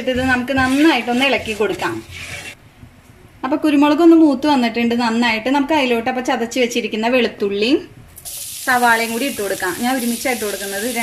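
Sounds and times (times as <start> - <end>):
onion sizzling in hot oil: 8.2 - 11.0.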